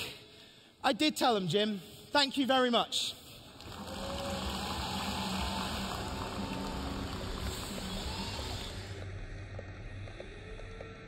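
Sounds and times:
audience applauding: 3.4s - 9.1s.

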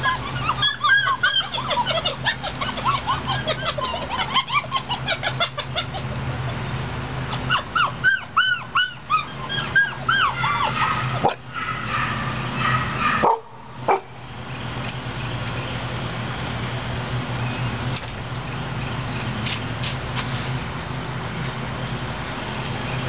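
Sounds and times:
puppies yipping: 0.0s - 14.2s, 17.2s - 18.1s.

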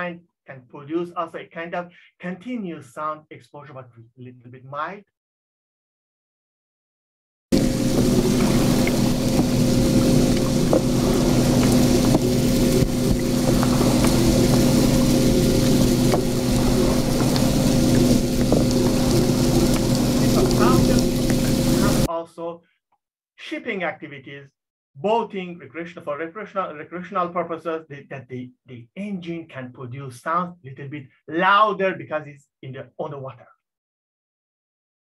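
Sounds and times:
wind turbine hum: 7.6s - 22.1s.

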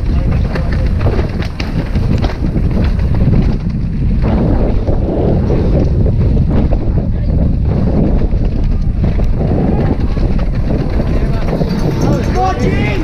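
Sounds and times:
bike clicks and rattles: 0.0s - 13.0s
tyres rumbling on dirt trail: 0.0s - 13.0s
wind buffeting microphone: 0.0s - 13.0s.

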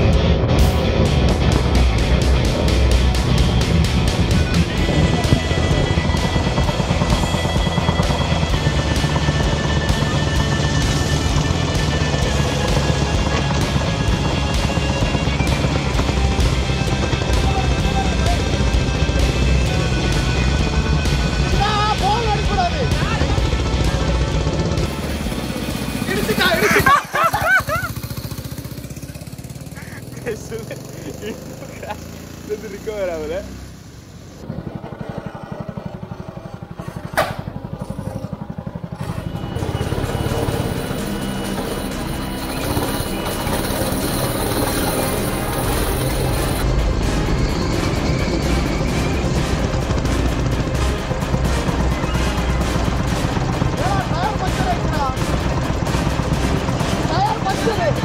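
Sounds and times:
go-kart engine running: 0.0s - 58.0s
sharp knock: 37.2s - 37.5s.

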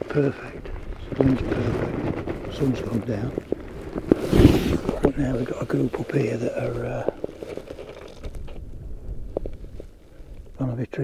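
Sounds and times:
faint clicks and rustles: 0.0s - 11.0s
wind rumble on microphone: 0.0s - 11.0s.

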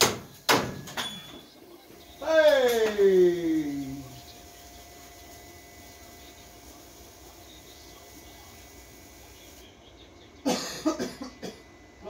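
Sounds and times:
faint thin hum: 1.0s - 12.0s
man coughing loudly: 10.4s - 11.7s.

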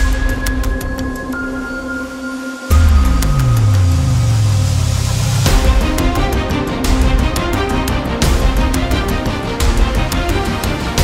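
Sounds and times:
low boom sliding into drone: 2.7s - 7.0s.

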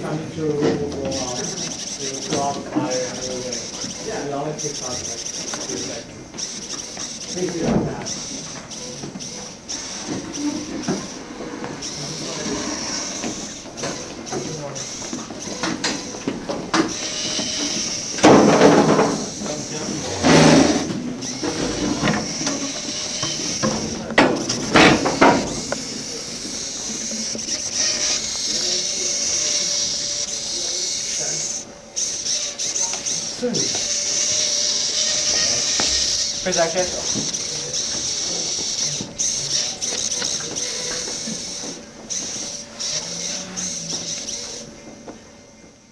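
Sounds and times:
background chatter of voices: 0.0s - 45.9s
servo motors whirring: 0.0s - 45.9s.

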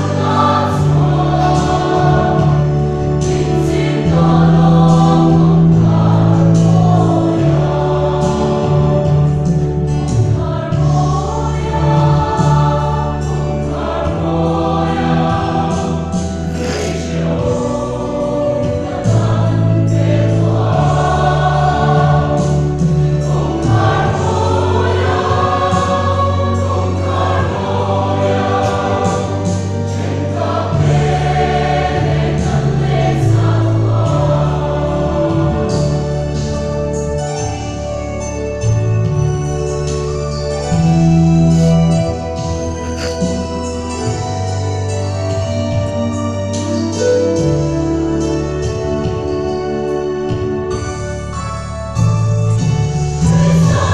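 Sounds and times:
choir singing a hymn: 0.0s - 53.9s.

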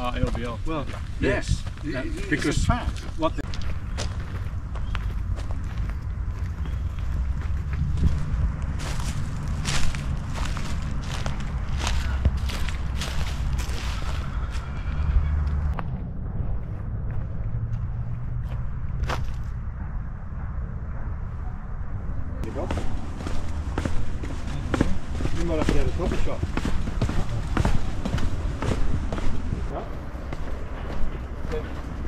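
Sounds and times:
steady low rumble: 0.0s - 32.0s
footsteps on leaf litter: 7.4s - 14.7s, 22.5s - 29.7s.

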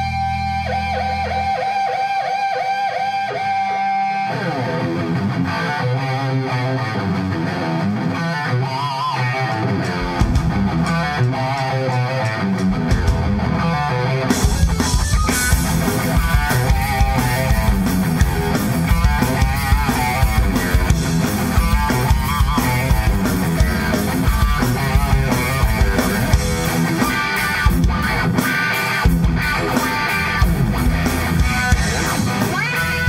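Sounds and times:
bass guitar: 0.0s - 33.0s
electric guitar lead: 0.0s - 33.0s
drum kit: 9.4s - 33.0s.

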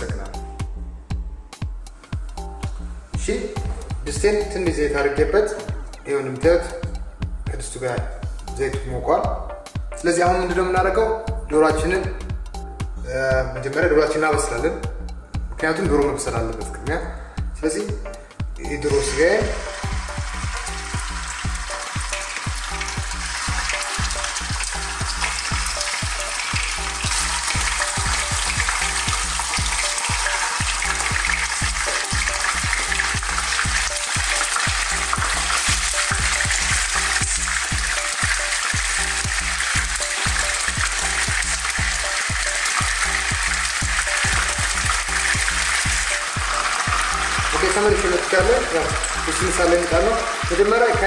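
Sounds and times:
chicken sizzling in hot oil: 18.8s - 51.0s.

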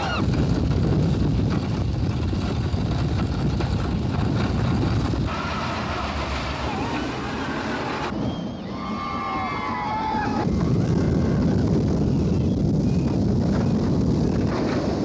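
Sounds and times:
roller coaster rumbling on track: 0.0s - 15.0s
wind rushing over microphone: 0.0s - 15.0s
faint rider screams: 8.6s - 11.5s.

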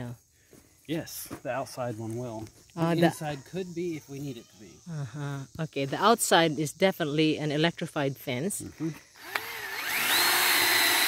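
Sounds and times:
cordless drill whining: 8.8s - 11.0s
drill switch click: 9.2s - 9.5s.

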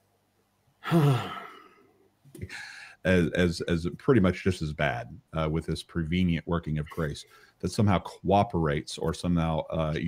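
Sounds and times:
man sighing: 0.8s - 3.0s.

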